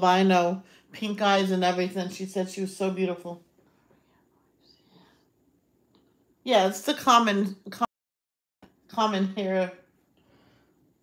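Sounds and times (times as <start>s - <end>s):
faint breathy sound: 3.6s - 5.5s.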